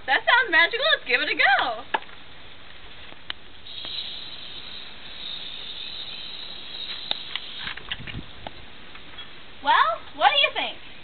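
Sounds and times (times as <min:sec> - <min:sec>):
aerosol spray can hissing: 0:03.7 - 0:07.8.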